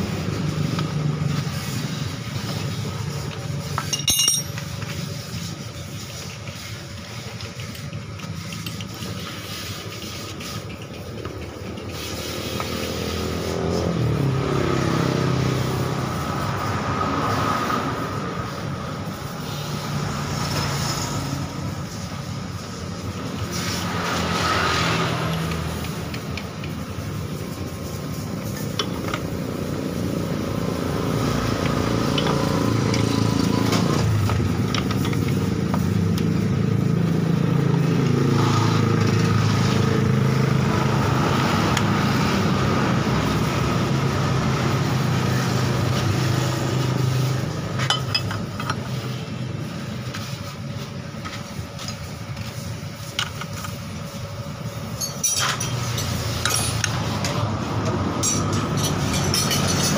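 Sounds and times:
scooter engine revving and idling: 0:00.0 - 0:03.9, 0:04.5 - 0:59.9
metallic clinks: 0:03.8 - 0:04.8, 0:55.0 - 0:57.0, 0:58.2 - 0:59.9.

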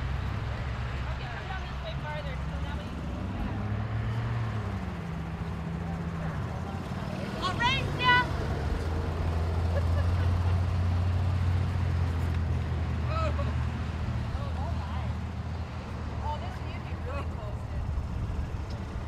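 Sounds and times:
golf cart engine drone: 0:00.0 - 0:19.0.

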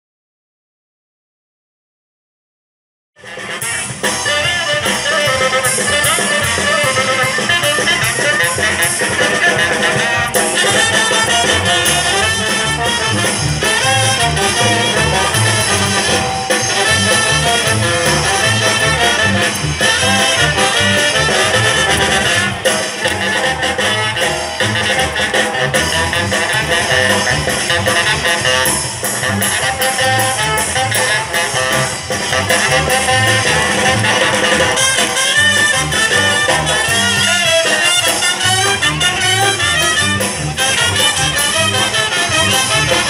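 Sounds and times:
brass band playing dance music: 0:03.2 - 0:43.0.

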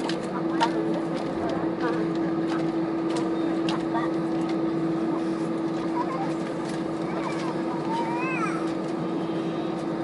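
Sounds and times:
airplane cabin hum: 0:00.0 - 0:10.0
constant buzzing tone: 0:00.0 - 0:10.0.

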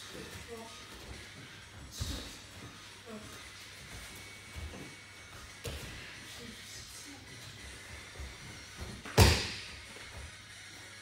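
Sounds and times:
feet thumping on mat: 0:00.9 - 0:02.9, 0:03.7 - 0:06.3, 0:07.6 - 0:10.4
body slapping onto mat: 0:08.7 - 0:10.3.

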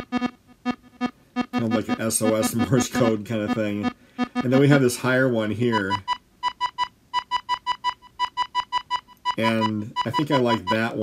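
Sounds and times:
synth loop of clipped high notes: 0:00.0 - 0:06.1, 0:09.4 - 0:11.0.

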